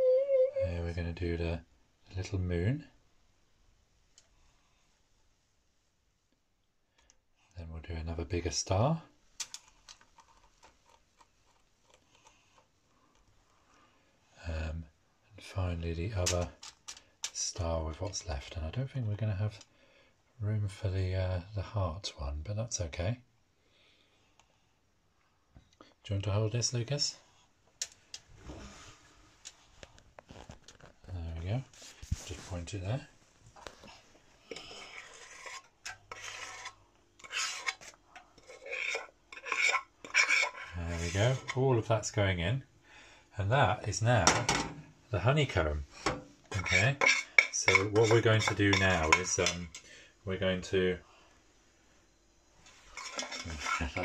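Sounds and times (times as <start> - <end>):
faint steady hum: 0.0 - 54.0
spoon scraping a pan: 34.4 - 41.9, 45.9 - 49.9, 52.6 - 54.0.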